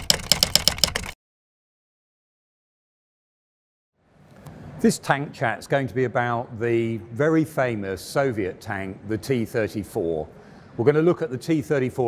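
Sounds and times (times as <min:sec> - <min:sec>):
rapid sharp clicks: 0:00.0 - 0:01.2.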